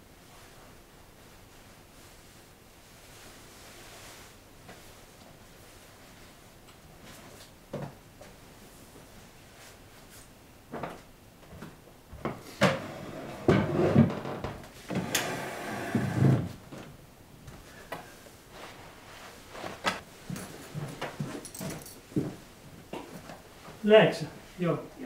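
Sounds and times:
fabric rustling: 17.6 - 23.8.

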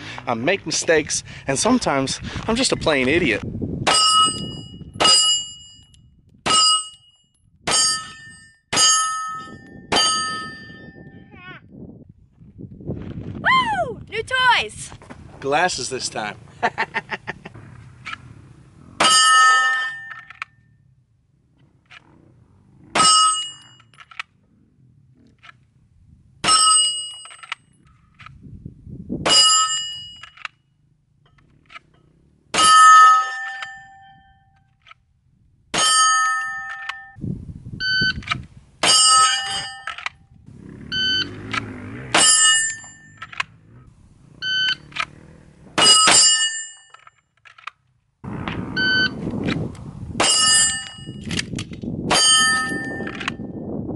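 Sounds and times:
steel plates ringing: 3.9 - 10.8, 32.5 - 34.6, 35.8 - 37.2, 38.8 - 40.0, 42.1 - 43.2, 45.8 - 47.1, 50.2 - 51.2, 52.1 - 53.1.

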